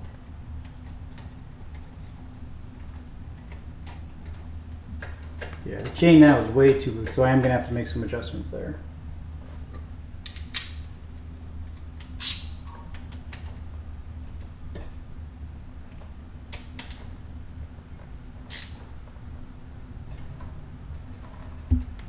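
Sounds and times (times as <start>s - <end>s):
steady low hum: 0.0s - 22.0s
wrench clicking on bolts: 5.0s - 7.6s.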